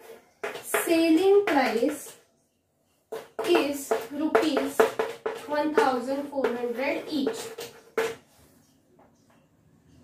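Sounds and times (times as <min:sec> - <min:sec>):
chalk tapping on blackboard: 0:00.0 - 0:02.3, 0:03.0 - 0:08.3
person talking: 0:03.4 - 0:07.5.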